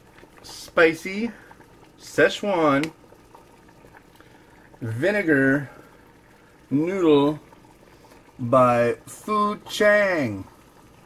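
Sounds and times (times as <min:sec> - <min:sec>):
water boiling in a pot: 0:00.0 - 0:11.0.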